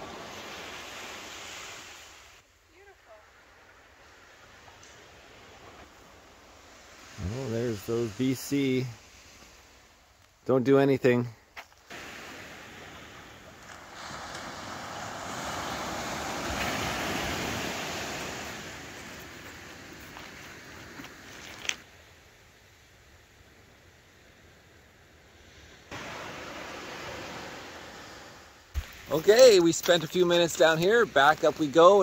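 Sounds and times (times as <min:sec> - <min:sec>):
surf washing onto beach: 0:00.0 - 0:02.4, 0:03.2 - 0:10.0, 0:11.8 - 0:21.9, 0:25.3 - 0:32.0.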